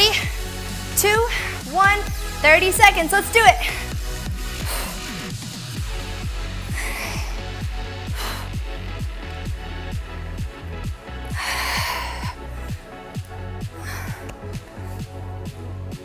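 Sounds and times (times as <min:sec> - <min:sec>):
electronic workout music: 0:00.0 - 0:16.0
sharp breaths of effort: 0:00.1 - 0:02.4, 0:03.6 - 0:09.1, 0:11.2 - 0:15.5.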